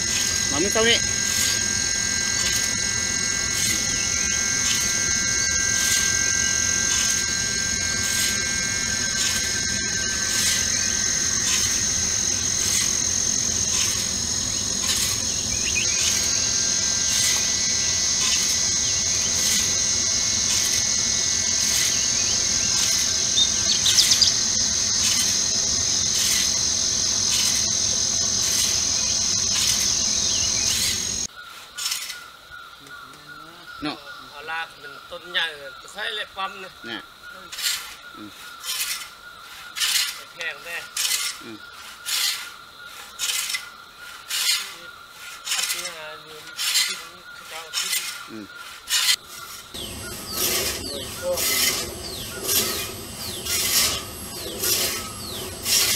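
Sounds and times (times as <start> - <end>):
insects droning: 0.0 - 55.9
bird chirps: 2.4 - 19.8, 21.6 - 25.4, 27.3 - 36.0, 45.5 - 55.9.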